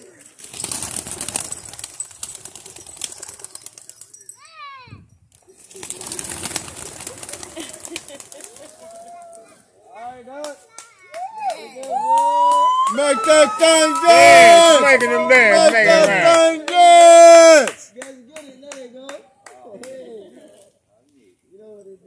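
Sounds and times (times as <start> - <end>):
dove wings flapping: 0.0 - 4.2, 5.6 - 9.4
voices: 3.3 - 22.0.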